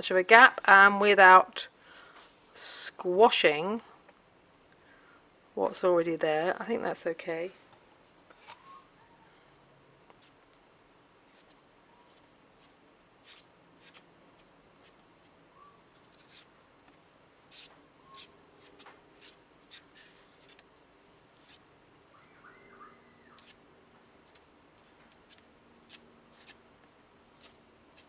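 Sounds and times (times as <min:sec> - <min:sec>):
palette knife scraping paper: 0:11.2 - 0:15.0, 0:15.9 - 0:16.5, 0:17.5 - 0:20.6, 0:21.4 - 0:21.6, 0:23.3 - 0:23.6, 0:25.2 - 0:26.6, 0:27.4 - 0:28.0.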